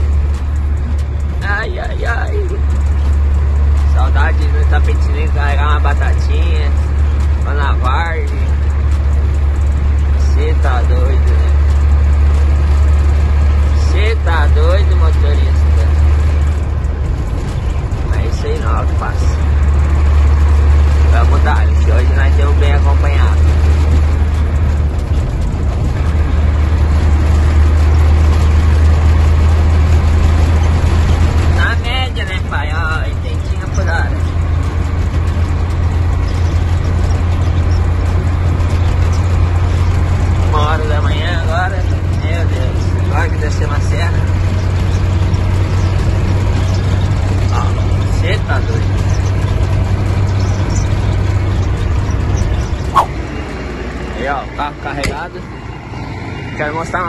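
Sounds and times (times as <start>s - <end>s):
diesel truck engine droning: 0.0s - 57.0s
bits of voice: 1.4s - 2.7s.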